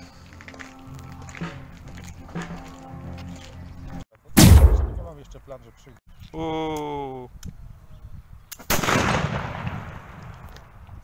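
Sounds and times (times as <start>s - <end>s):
pistol shot with echo: 4.4s - 5.3s.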